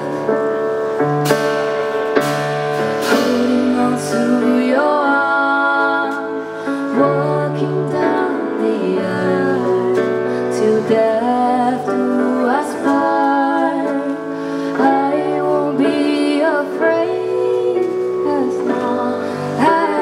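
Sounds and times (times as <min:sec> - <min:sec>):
band accompaniment: 0:00.0 - 0:20.0
woman singing into microphone: 0:03.0 - 0:20.0.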